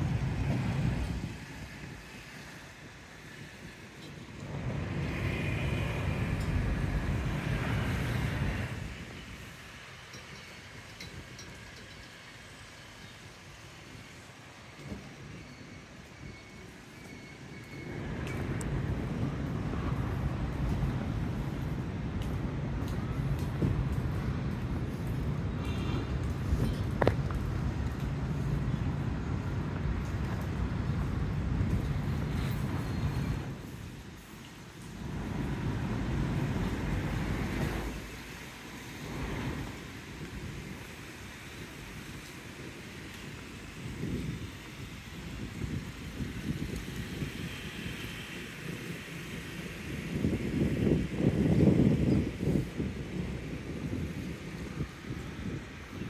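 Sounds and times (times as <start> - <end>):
wind buffeting microphone: 0.0 - 12.4, 17.8 - 56.0.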